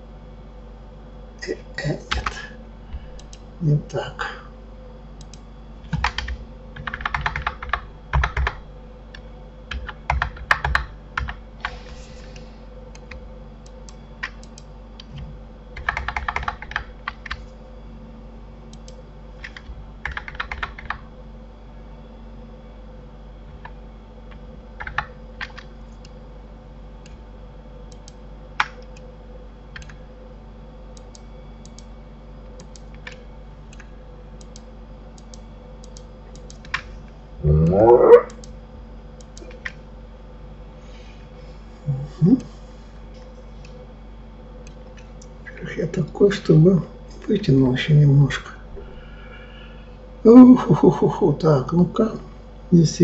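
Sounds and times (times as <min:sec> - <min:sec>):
low electrical hum: 0:00.0 - 0:53.0
keyboard and mouse clicks: 0:03.2 - 0:03.4, 0:13.0 - 0:17.4, 0:23.6 - 0:26.2, 0:27.9 - 0:29.1, 0:29.8 - 0:30.0, 0:31.0 - 0:31.9, 0:32.6 - 0:36.9, 0:37.6 - 0:38.6, 0:39.2 - 0:39.8
short loud vocal sound: 0:37.4 - 0:38.3.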